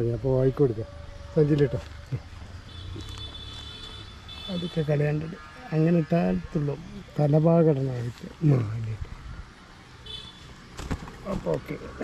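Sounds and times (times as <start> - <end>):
man speaking: 4.5 - 9.0.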